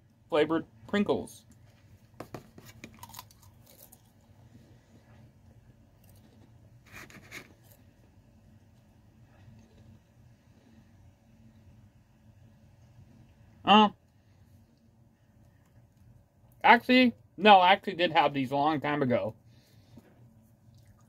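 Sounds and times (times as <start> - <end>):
crisp crunching and chewing: 2.6 - 4.3, 6.0 - 6.6.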